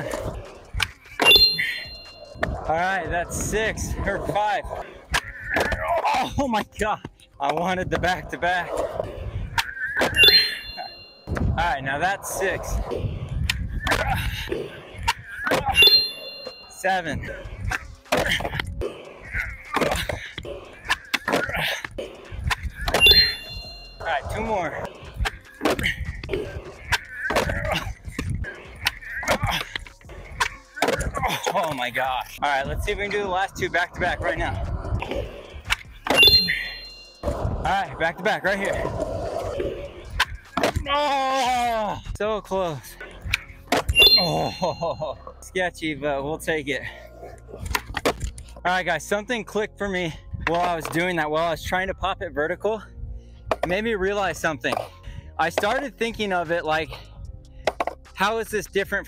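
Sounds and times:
skateboard wheels rolling: 0.0 - 6.0, 36.8 - 40.9
skateboard wheels rolling on concrete: 0.0 - 16.6, 17.2 - 36.2, 36.8 - 41.5
bell-like ding: 1.2 - 2.2, 10.2 - 11.3, 15.7 - 16.8, 23.0 - 24.0, 36.1 - 37.2, 43.9 - 44.9
skateboard clacking: 24.3 - 32.0, 57.6 - 58.1
skateboard knocking on concrete: 57.6 - 58.1.

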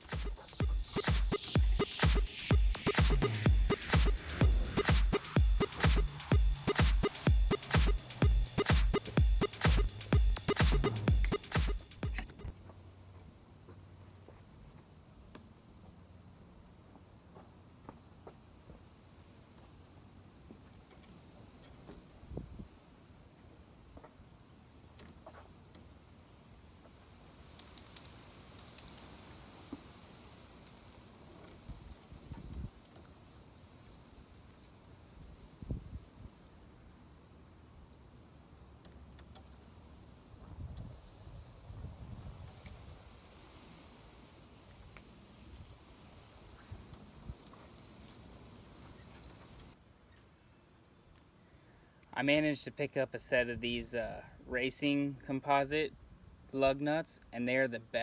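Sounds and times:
outdoor background noise: 0.0 - 58.0.

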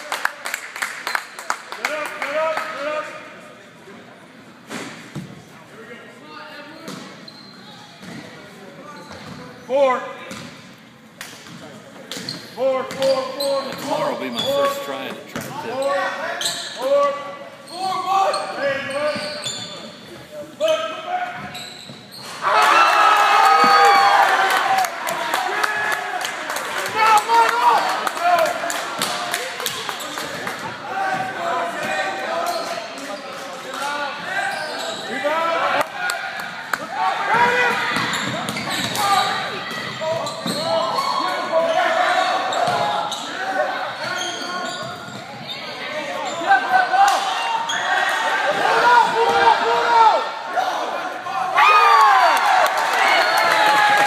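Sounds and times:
crowd shouting and cheering: 22.3 - 32.6, 34.1 - 44.7, 45.8 - 54.0
basketball bouncing on court: 37.4 - 39.0.

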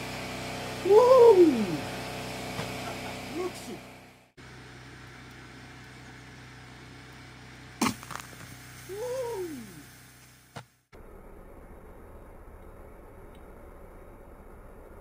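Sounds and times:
person whooping: 0.8 - 1.9, 8.9 - 9.8
bottle rocket pop and rush: 7.8 - 8.5.

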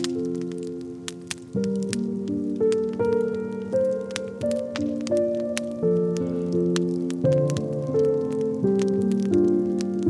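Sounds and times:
slow piano music: 0.0 - 10.0
wood fire crackling: 0.0 - 10.0.

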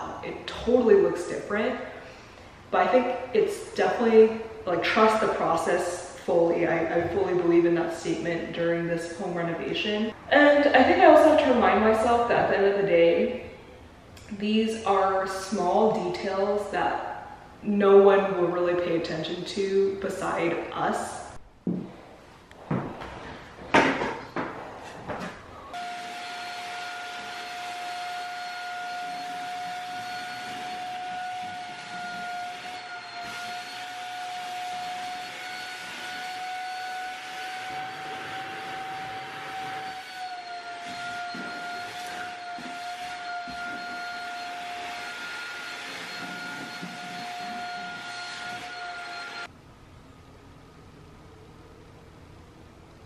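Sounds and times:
vacuum cleaner whining: 25.5 - 49.5.

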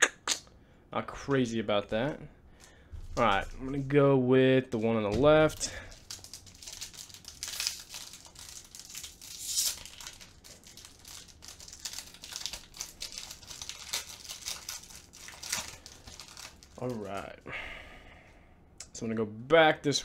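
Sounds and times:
foil wrapper crinkling and tearing: 5.2 - 17.3.

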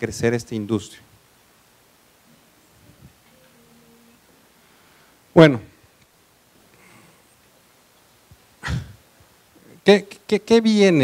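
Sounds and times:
man's short vocal sound: 8.6 - 9.0.

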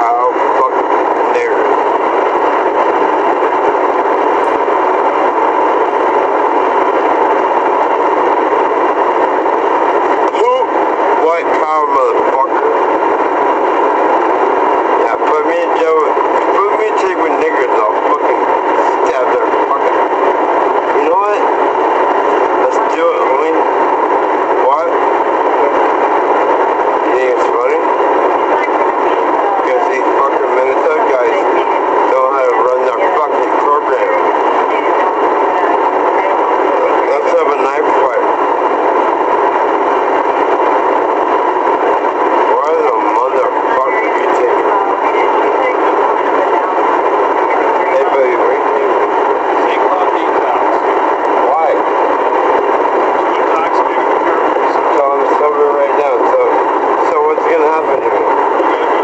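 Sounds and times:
constant loud hiss: 0.0 - 59.0
muffled voices: 0.0 - 59.0.

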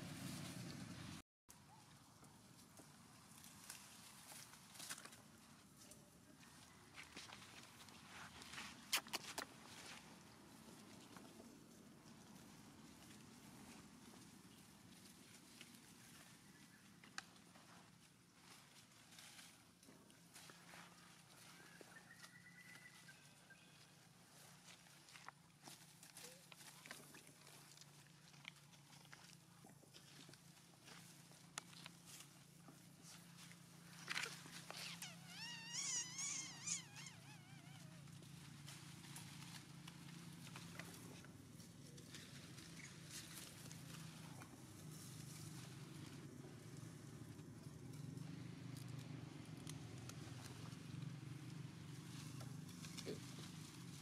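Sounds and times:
rustles and clicks in grass: 0.0 - 54.0
monkey squealing call: 34.8 - 38.0.

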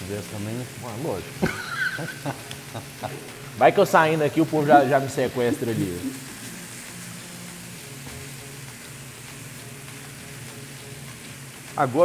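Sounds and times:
meat sizzling in a pan: 0.0 - 12.0.

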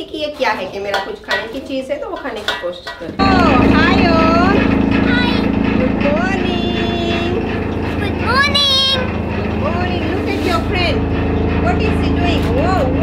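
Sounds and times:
chaff cutter motor hum: 3.2 - 13.0.

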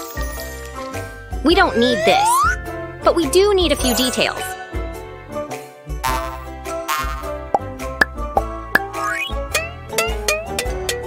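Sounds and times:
light children's music: 0.0 - 11.0.

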